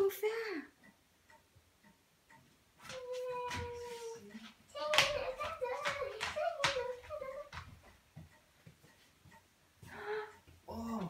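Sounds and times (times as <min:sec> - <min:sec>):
sharp taps: 0:04.8 - 0:10.0.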